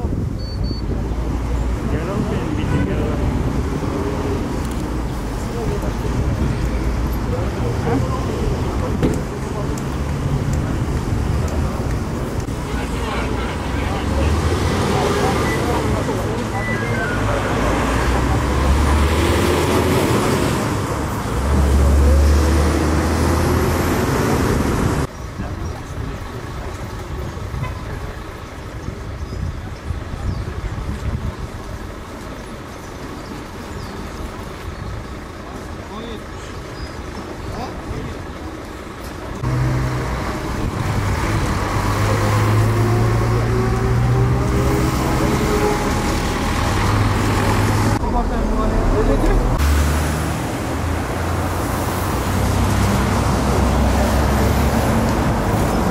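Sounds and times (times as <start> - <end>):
vehicle engines in traffic: 0.0 - 55.9
voices: 0.0 - 55.9.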